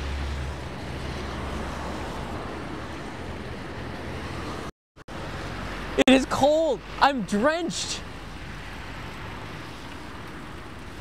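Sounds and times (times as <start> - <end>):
traffic hiss on wet street: 0.0 - 11.0.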